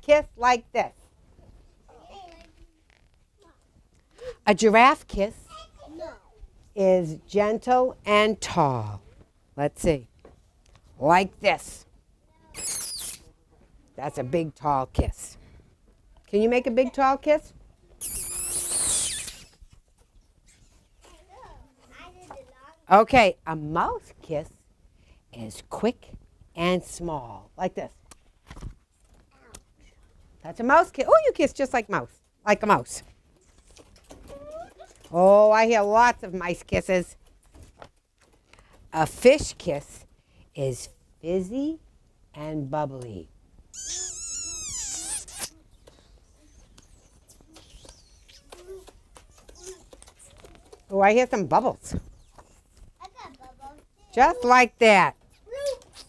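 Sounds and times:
high squeaky kissing sound: 12.5 - 13.3, 18.0 - 19.7, 43.7 - 50.3, 55.6 - 56.0.

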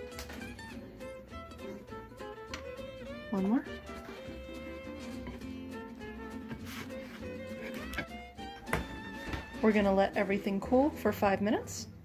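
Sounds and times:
instrumental music: 0.0 - 11.4.

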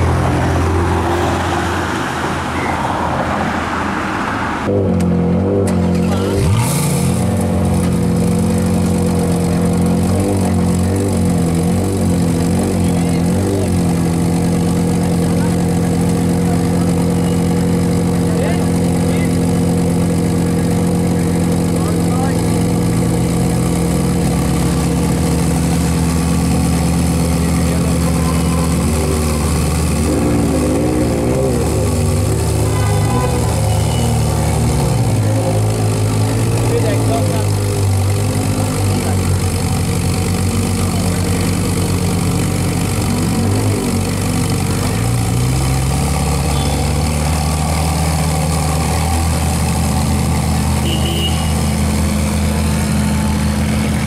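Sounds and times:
car engine idling: 4.5 - 54.0.

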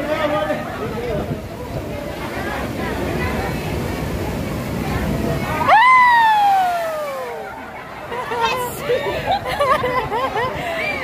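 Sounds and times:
person whooping: 5.7 - 7.3.

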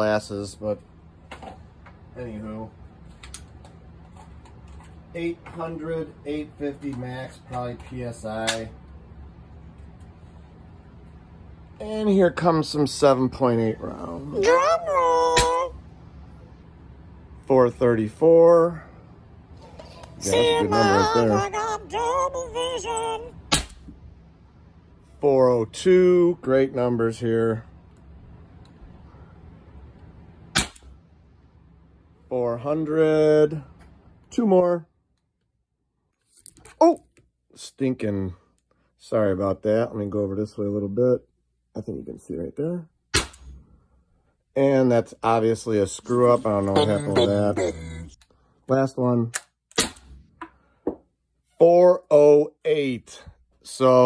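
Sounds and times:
steady low hum: 0.0 - 54.0
air gun shot crack: 23.5 - 23.9, 30.5 - 30.9, 43.1 - 43.6, 49.7 - 50.2.

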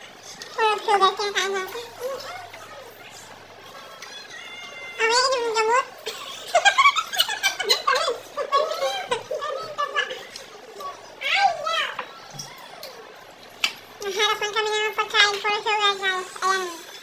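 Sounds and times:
people talking: 0.0 - 17.0
high wavering voice: 0.1 - 6.0
people laughing: 5.9 - 11.2.

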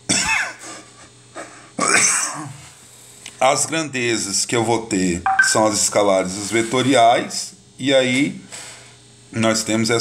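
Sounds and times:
person coughing: 0.1 - 0.6, 1.8 - 2.6.

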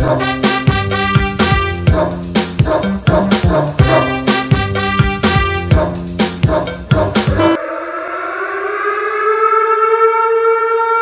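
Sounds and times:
steady horn-like tone: 0.0 - 6.8.

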